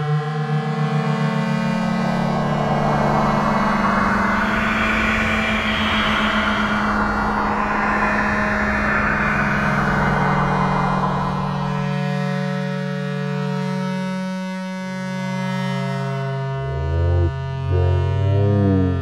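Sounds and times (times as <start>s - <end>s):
low drone of held tones: 0.0s - 19.0s
grainy noisy texture: 1.3s - 12.6s, 16.4s - 19.0s.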